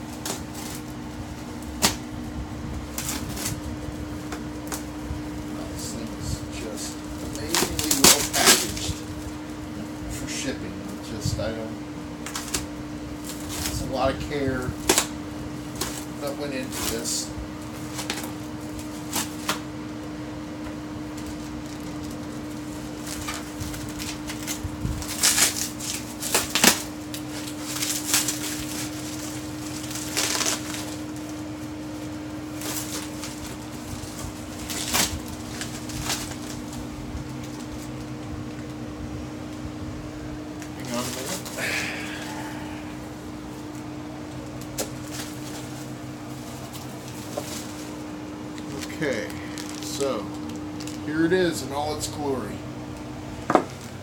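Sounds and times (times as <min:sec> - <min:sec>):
packaging rustling and crinkling: 0:00.0 - 0:11.2, 0:12.2 - 0:19.7, 0:20.6 - 0:38.8, 0:40.5 - 0:52.5, 0:53.4 - 0:54.0
steady low hum: 0:00.0 - 0:54.0.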